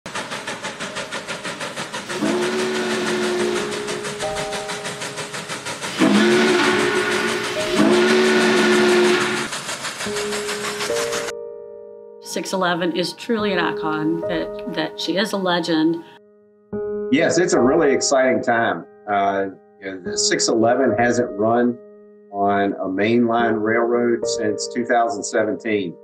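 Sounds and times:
steam locomotive exhaust chuffs: 0:00.0 - 0:11.3
chime whistle blasts: 0:06.0 - 0:09.5.

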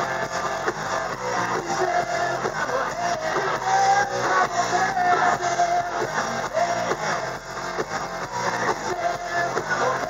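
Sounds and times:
hard rock band playing: 0:00.0 - 0:10.0.

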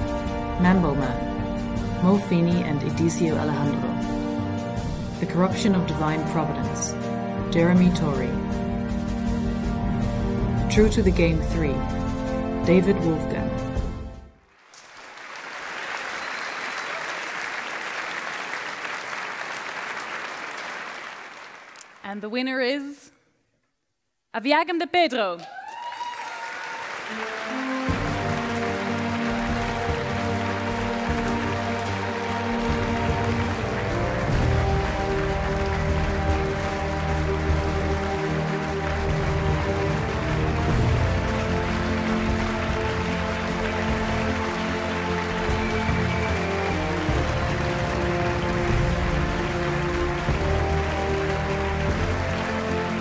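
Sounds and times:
background music with held chords: 0:00.0 - 0:14.4, 0:27.1 - 0:53.0.

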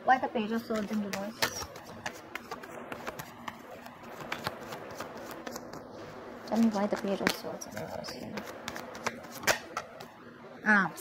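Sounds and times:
cards being shuffled: 0:00.6 - 0:10.1.

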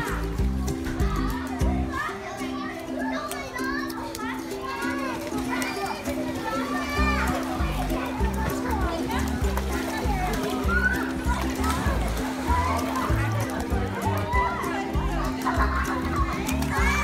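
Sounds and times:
background music with low beat: 0:00.0 - 0:01.9, 0:07.0 - 0:17.0
children calling and chattering: 0:00.0 - 0:17.0.

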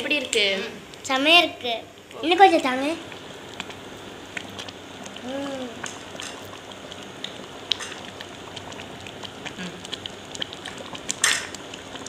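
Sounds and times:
stew simmering in a pan: 0:00.0 - 0:12.0
person humming: 0:05.2 - 0:05.8, 0:09.6 - 0:09.9.

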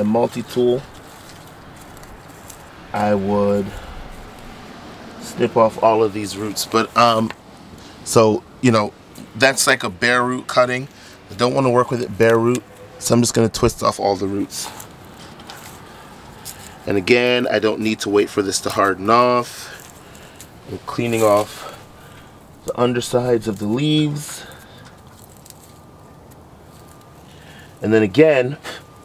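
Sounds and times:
faint outdoor background noise: 0:00.0 - 0:29.0
roots crackling and rustling: 0:00.0 - 0:29.0.

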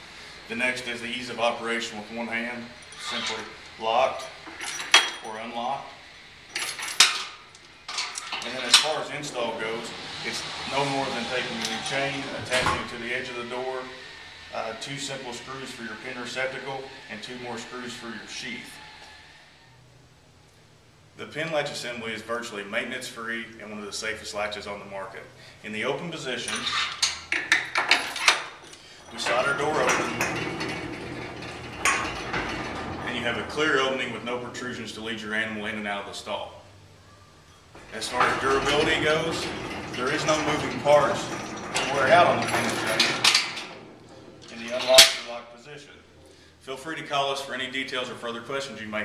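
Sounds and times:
sliding door rattling along track: 0:00.2 - 0:19.7, 0:26.4 - 0:36.0, 0:37.7 - 0:45.6
metal chain jingle: 0:04.2 - 0:05.3.

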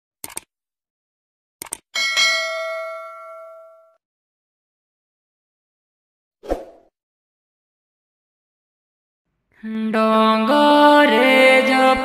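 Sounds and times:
quick double clicks: 0:00.2 - 0:00.5, 0:01.6 - 0:01.8
bell-like notification ding: 0:02.0 - 0:04.0.

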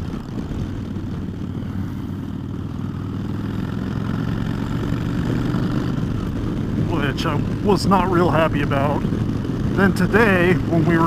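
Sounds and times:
motorcycle engine at road speed: 0:00.0 - 0:11.0.

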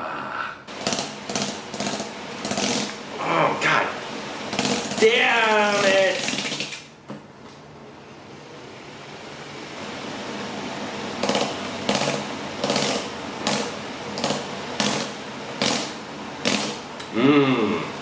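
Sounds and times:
sharp rasping bursts: 0:00.7 - 0:03.0, 0:04.5 - 0:06.9, 0:11.2 - 0:16.8
electric motor grinding sandpaper on skin: 0:00.8 - 0:03.0, 0:04.5 - 0:06.8.

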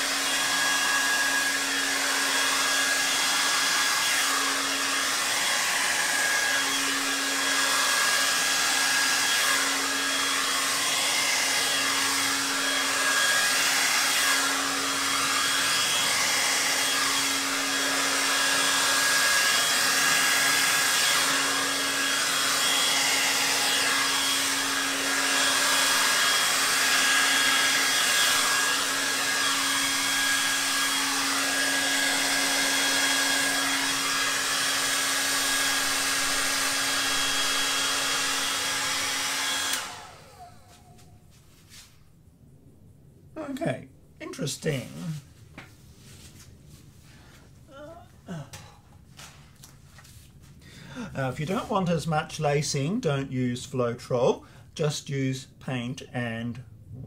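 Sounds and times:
hair dryer blowing: 0:00.0 - 0:41.8, 0:44.7 - 0:53.2.

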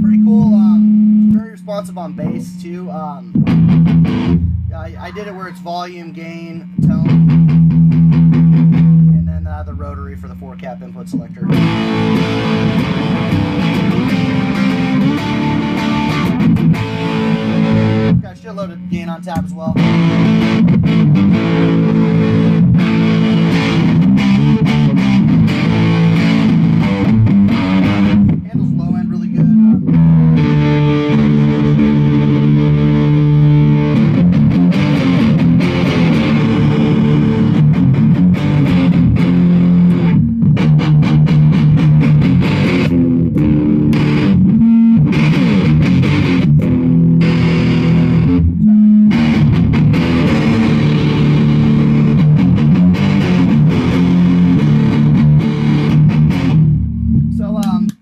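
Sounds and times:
fuzzed electric guitar: 0:00.0 - 0:58.0.

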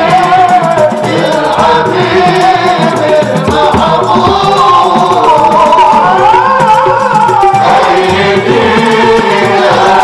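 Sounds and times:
frame drums beating: 0:00.0 - 0:10.0
men singing in unison: 0:00.0 - 0:10.0.

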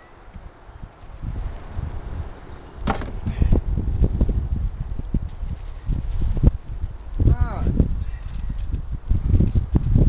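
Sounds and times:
plastic bag handling knocks: 0:02.8 - 0:03.4.

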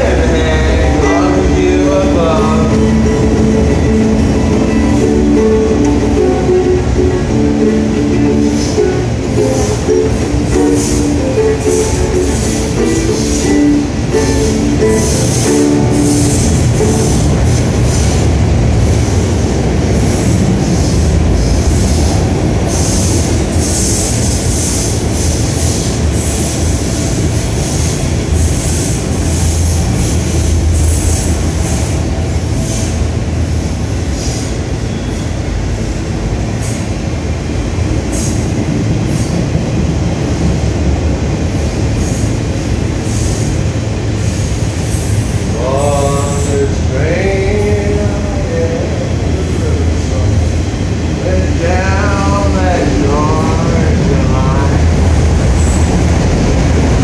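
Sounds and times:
train rumbling past: 0:00.0 - 0:57.0
wheels clacking and squealing on rails: 0:00.0 - 0:57.0.

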